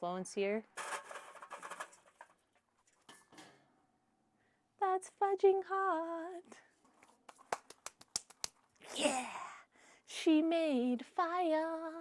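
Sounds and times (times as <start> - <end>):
coals clattering onto metal: 0.8 - 3.6.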